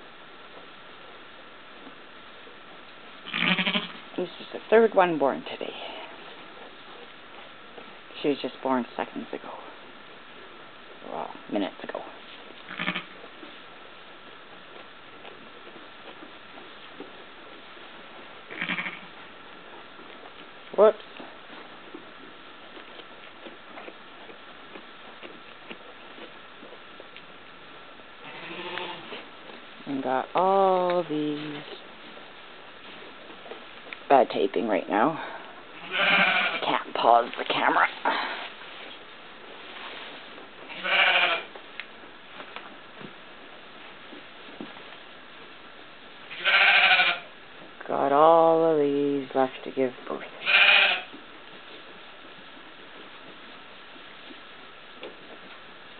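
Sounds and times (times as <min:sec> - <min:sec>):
sheep bleating: 0:03.2 - 0:04.0, 0:12.7 - 0:13.2, 0:18.5 - 0:19.1, 0:28.2 - 0:29.2, 0:35.8 - 0:36.6, 0:40.7 - 0:41.5, 0:46.3 - 0:47.3, 0:50.4 - 0:51.1.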